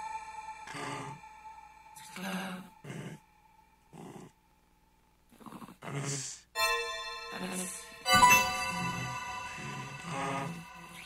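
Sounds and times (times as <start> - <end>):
breathy vocal sounds: 0.0 - 4.4, 9.1 - 11.0.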